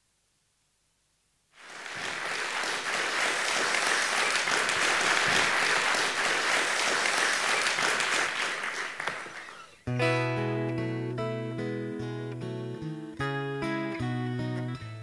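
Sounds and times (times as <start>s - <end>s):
audience applauding: 1.6s - 9.8s.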